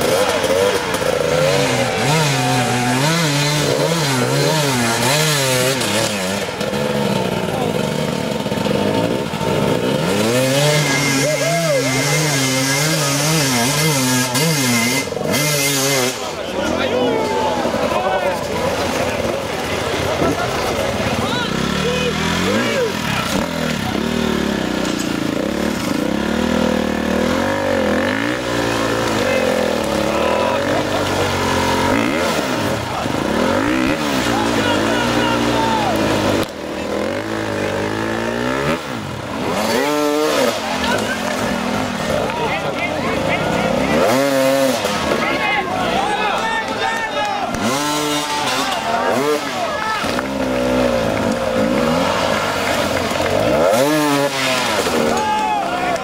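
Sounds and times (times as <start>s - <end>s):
dirt bike engines revving: 0.0s - 56.0s
spectators shouting and talking: 0.0s - 56.0s.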